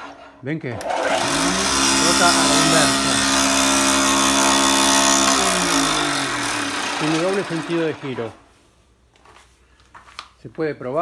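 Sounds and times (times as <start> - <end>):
woodworking machine motor humming: 0.8 - 8.5.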